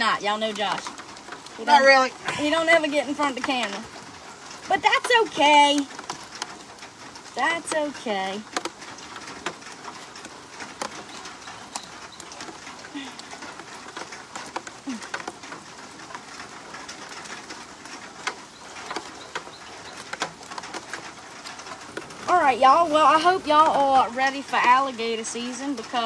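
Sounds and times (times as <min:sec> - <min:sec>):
light rain hissing: 0:00.0 - 0:26.0
raindrop ticks: 0:00.0 - 0:26.0.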